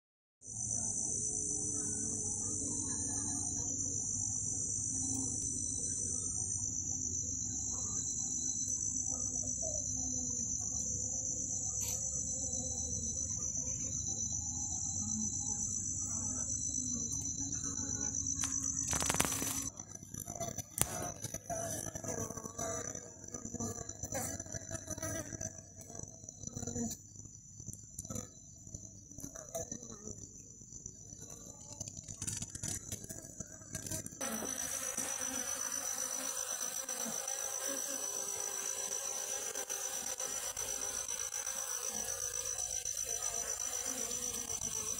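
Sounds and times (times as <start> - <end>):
high-pitched insect trill: 0.4 - 44.9
honeybees humming: 0.5 - 44.9.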